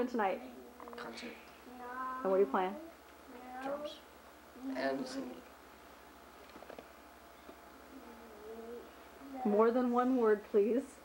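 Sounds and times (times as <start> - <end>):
person humming softly: 7.9 - 8.9.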